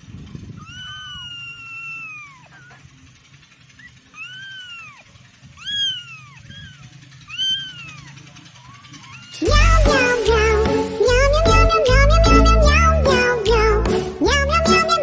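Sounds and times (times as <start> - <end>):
kitten meowing: 0.6 - 2.8, 3.8 - 8.2, 8.9 - 9.7.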